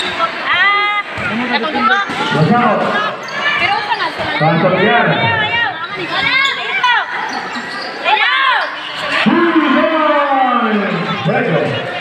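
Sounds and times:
game and spectator noise: 0:00.0 - 0:12.0
basketball shoes squeaking: 0:05.9 - 0:09.2.

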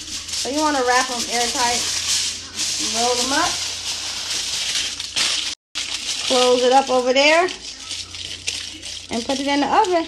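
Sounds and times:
aluminium foil crinkling: 0:00.0 - 0:10.0.

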